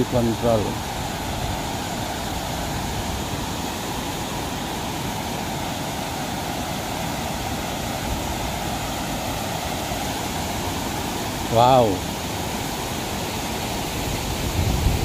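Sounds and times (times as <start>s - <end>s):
water rushing over weir: 0.0s - 15.0s.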